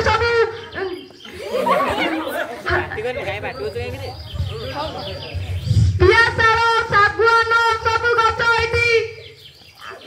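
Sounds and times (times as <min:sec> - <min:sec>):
people talking: 0:00.0 - 0:09.2
onlookers chattering: 0:00.0 - 0:10.0.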